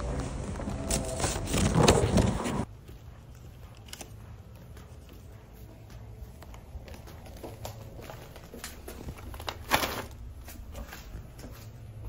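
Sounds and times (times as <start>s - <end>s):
footsteps on concrete: 2.6s - 9.5s.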